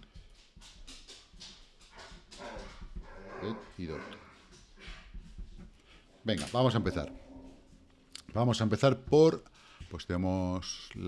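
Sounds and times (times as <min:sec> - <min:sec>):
dog crying: 0:02.4 - 0:04.3.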